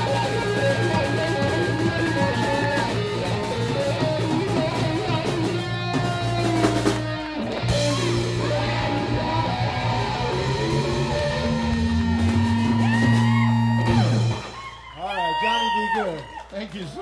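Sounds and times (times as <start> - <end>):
electric guitar lead: 0.0 - 14.7
bass guitar: 0.0 - 14.9
drum kit: 0.0 - 15.3.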